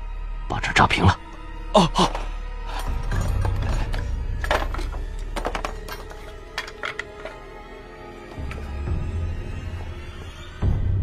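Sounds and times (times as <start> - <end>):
light clinks and knocks: 2.7 - 7.6.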